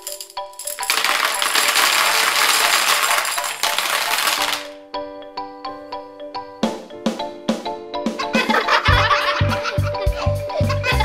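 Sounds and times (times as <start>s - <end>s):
candies clattering into plastic tub: 0.8s - 4.8s.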